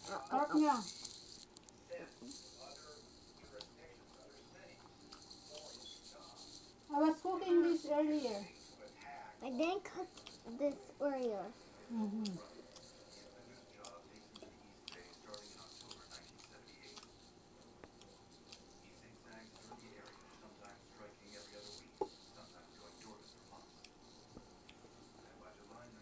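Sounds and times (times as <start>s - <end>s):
chewing and lip smacks: 0.8s - 6.8s, 10.1s - 10.5s, 11.6s - 26.0s
food squishing by hand: 8.5s - 26.0s.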